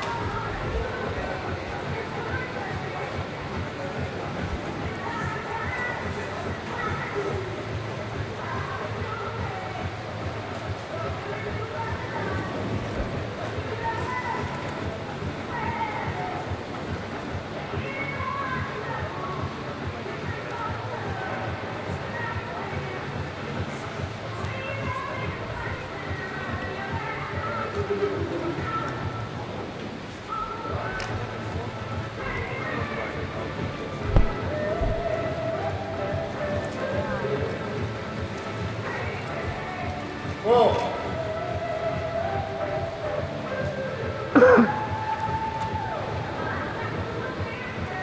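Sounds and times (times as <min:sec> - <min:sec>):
background music: 0:00.0 - 0:48.0
indistinct voices: 0:00.0 - 0:48.0.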